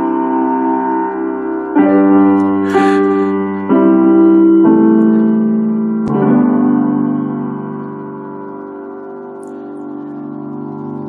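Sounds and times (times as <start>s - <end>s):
piano chords ringing: 0.0s - 11.0s.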